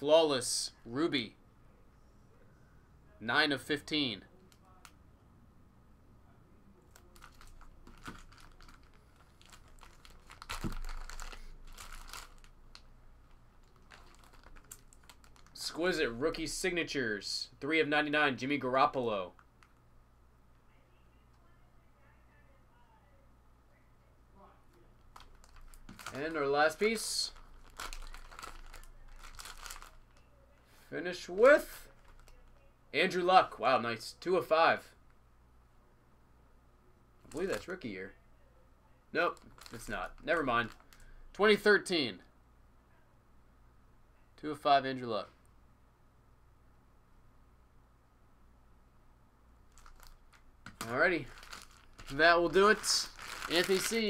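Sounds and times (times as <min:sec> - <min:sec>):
plastic packaging crinkling: 0:06.9 - 0:15.6, 0:25.0 - 0:30.2, 0:31.9 - 0:32.6, 0:39.3 - 0:41.1, 0:49.7 - 0:54.0.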